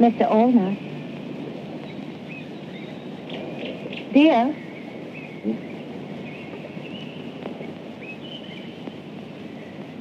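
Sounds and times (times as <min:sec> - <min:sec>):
faint bird chirp: 0:00.0 - 0:10.0
film soundtrack hiss: 0:00.0 - 0:10.0
outdoor ambience: 0:00.0 - 0:10.0.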